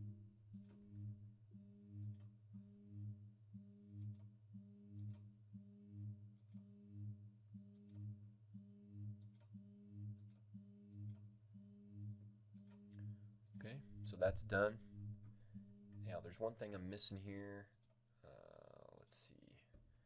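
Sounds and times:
computer mouse clicks: 0:05.0 - 0:05.2, 0:09.2 - 0:09.5, 0:10.2 - 0:11.2.

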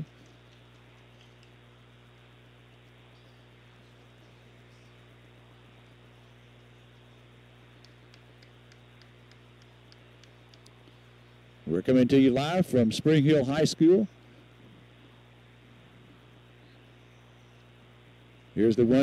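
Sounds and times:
faint high ticks: 0:00.0 - 0:01.6, 0:07.8 - 0:11.0
faint electrical hum: 0:00.0 - 0:19.0.

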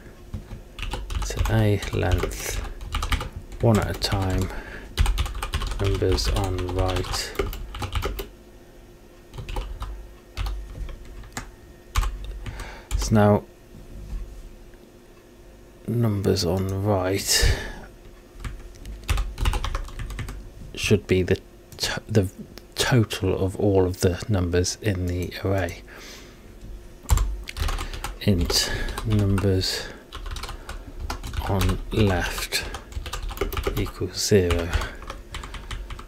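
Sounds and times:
computer keyboard typing: 0:00.3 - 0:08.3, 0:09.3 - 0:13.1, 0:18.4 - 0:20.4, 0:27.1 - 0:29.5, 0:30.1 - 0:36.0.

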